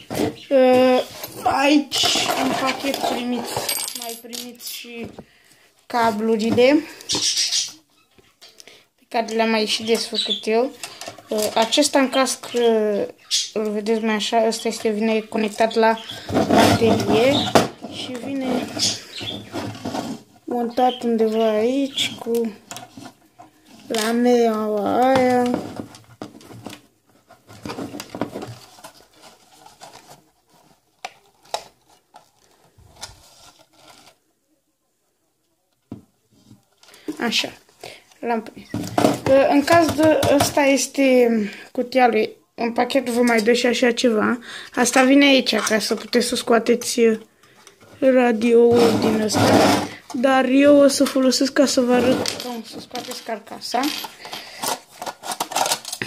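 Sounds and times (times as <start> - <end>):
handling noises: 0.0 - 5.3, 20.9 - 34.2, 38.4 - 40.7, 51.8 - 56.0.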